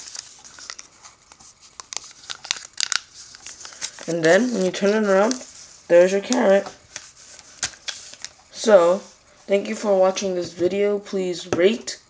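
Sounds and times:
paper rustling and crinkling: 0.0s - 8.4s.

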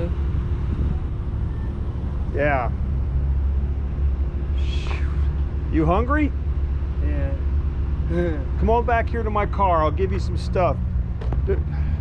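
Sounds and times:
parking lot rumble: 0.0s - 12.0s.

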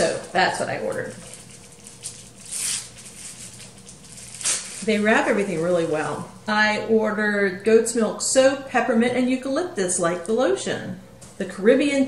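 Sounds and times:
paper crinkle: 0.0s - 6.2s
paper wrapping rustling: 0.0s - 6.2s.

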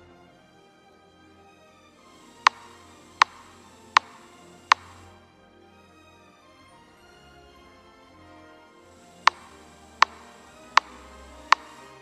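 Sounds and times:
faint background music: 0.0s - 12.0s
sharp metronome clicks: 2.3s - 5.0s, 9.2s - 12.0s.

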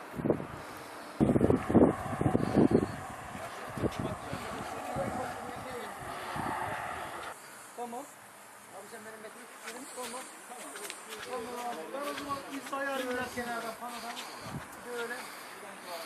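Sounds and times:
wind buffeting microphone: 0.0s - 7.4s, 11.2s - 15.4s
faint voices: 2.4s - 7.4s
steady hiss: 2.6s - 16.0s.

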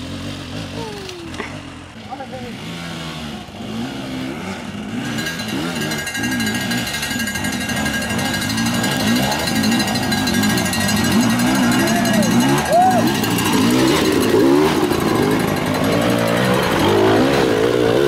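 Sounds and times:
dirt bike engines revving: 0.0s - 18.0s.

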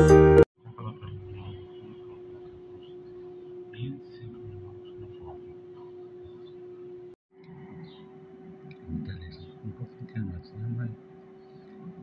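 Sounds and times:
faint steady hum: 0.6s - 12.0s.

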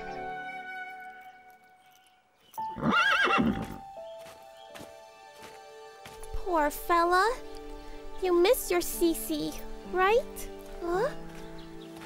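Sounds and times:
soft background music: 0.0s - 12.0s
horse neighing: 2.7s - 3.8s.

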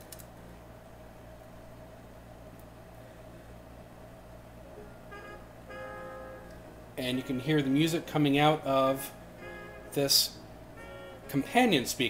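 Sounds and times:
faint steady hum: 0.0s - 12.0s
faint music from speaker: 4.6s - 12.0s.

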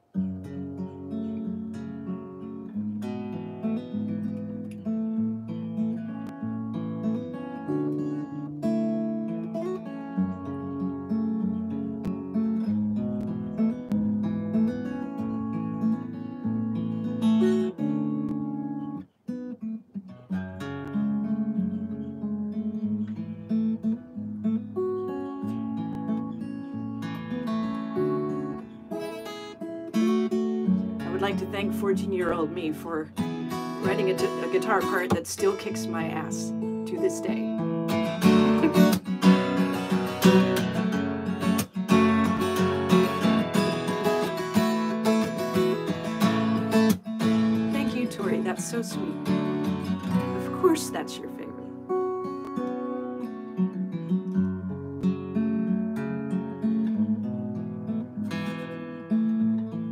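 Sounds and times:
acoustic guitar picking and strumming: 0.0s - 59.9s.

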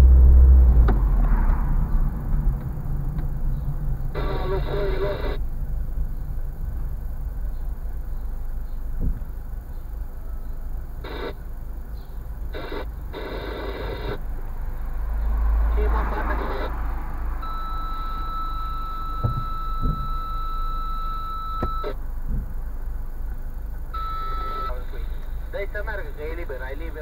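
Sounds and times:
car engine and road noise: 0.0s - 27.0s
high electronic tone: 17.4s - 22.0s, 24.0s - 25.2s.

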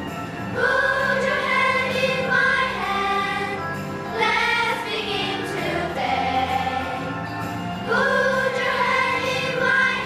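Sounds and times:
children's choir singing: 0.5s - 7.1s, 7.8s - 10.0s.

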